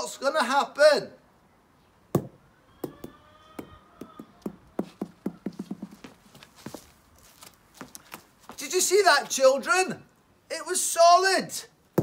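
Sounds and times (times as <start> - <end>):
rubber egg bouncing on stone: 4.0 - 6.1.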